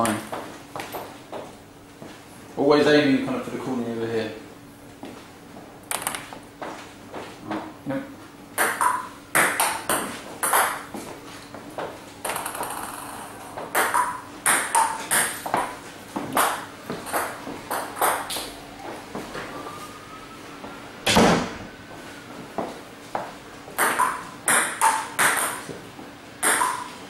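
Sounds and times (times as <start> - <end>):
bats hitting table tennis ball: 5.9 - 6.4, 8.6 - 11.1, 11.8 - 18.5, 23.2 - 25.8, 26.4 - 27.0
table tennis ball bouncing: 5.9 - 6.4, 8.6 - 11.0, 11.8 - 18.5, 23.2 - 25.8, 26.4 - 27.0.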